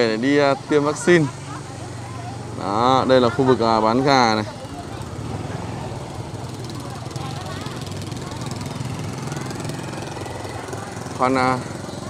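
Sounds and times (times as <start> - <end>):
motorbike engine rumbling: 0.0 - 12.0.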